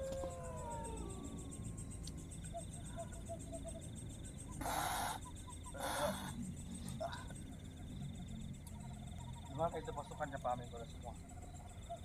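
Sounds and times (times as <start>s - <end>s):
night insects chirring: 0.0s - 12.0s.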